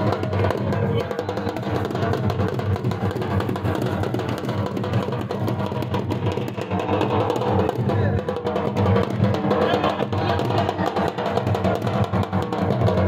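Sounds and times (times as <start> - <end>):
barrel drum beating rhythm: 0.0 - 13.0.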